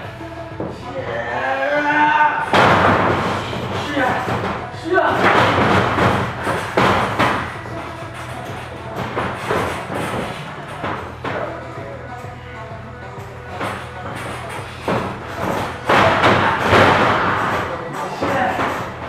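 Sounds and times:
background music with singing: 0:00.0 - 0:19.0
bodies thudding on ring mat: 0:02.4 - 0:11.6, 0:13.5 - 0:19.0.

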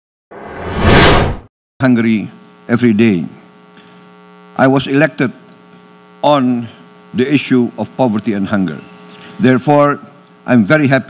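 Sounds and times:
whoosh transition effect: 0:00.4 - 0:01.4
man speaking: 0:06.2 - 0:08.8, 0:09.4 - 0:11.0.

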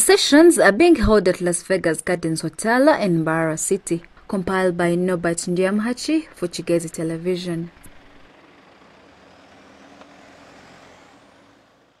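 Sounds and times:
vehicles driving past on dirt road: 0:04.1 - 0:12.0.

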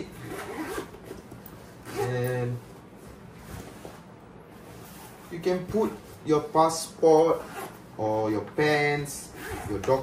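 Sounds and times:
backpack zipper being pulled: 0:00.2 - 0:01.0, 0:01.8 - 0:02.4, 0:07.4 - 0:07.8, 0:09.3 - 0:09.8.

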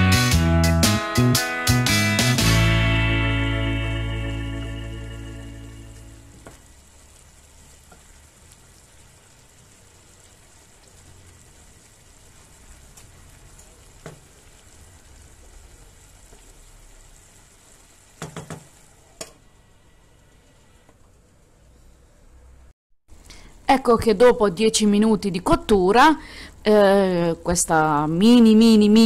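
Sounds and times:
food sizzling in a frying pan: 0:04.8 - 0:20.8
wooden spoon knocking on pan: 0:14.0 - 0:14.3, 0:18.2 - 0:19.4.

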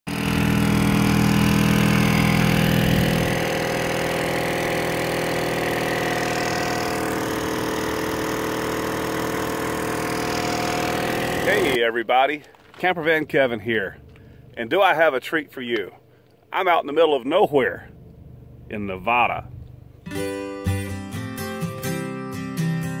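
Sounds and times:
portable generator running: 0:00.1 - 0:22.8.

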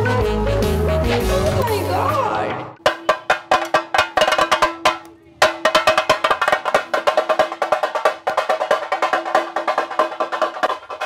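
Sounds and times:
drum beaten with sticks: 0:01.0 - 0:11.0.

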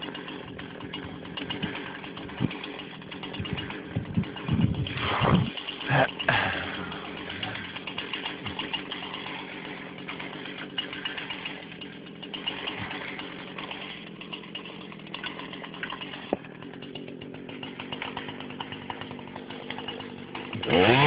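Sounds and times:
chainsaw engine running: 0:00.0 - 0:21.0.

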